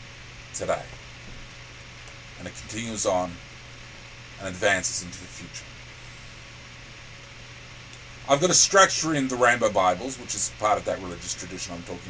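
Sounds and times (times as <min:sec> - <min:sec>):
background hiss: 0:00.0 - 0:12.0
low hum: 0:00.0 - 0:12.0.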